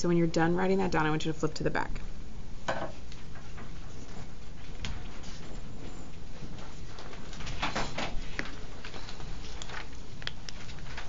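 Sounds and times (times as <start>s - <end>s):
shuffling and rustling: 2.9s - 11.0s.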